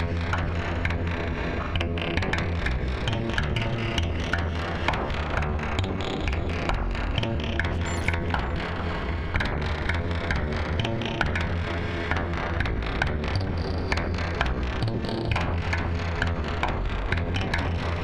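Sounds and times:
clicky sequenced synth notes: 0:07.2 - 0:09.0.

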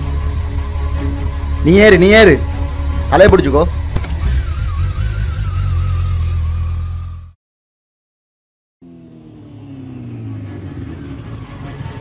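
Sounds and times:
motorcycle engine rumbling: 0:00.0 - 0:07.4, 0:08.8 - 0:12.0.

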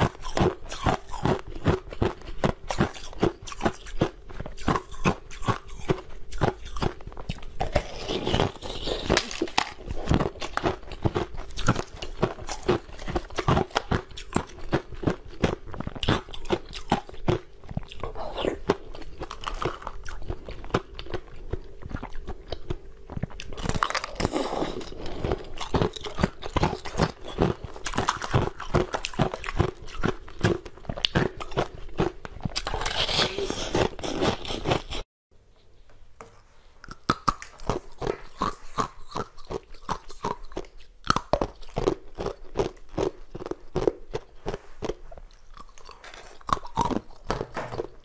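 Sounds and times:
chewing: 0:00.0 - 0:35.0, 0:36.8 - 0:48.0
ice crunching in mouth: 0:00.0 - 0:35.0, 0:36.8 - 0:48.0.

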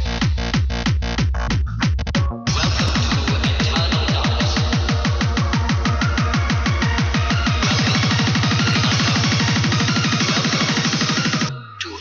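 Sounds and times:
distorted kick drums: 0:00.0 - 0:11.5
synth sounds: 0:02.5 - 0:12.0.

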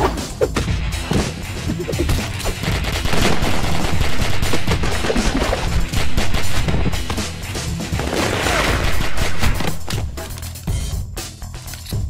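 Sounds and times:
rapid gunfire: 0:02.0 - 0:07.4, 0:08.0 - 0:10.1.

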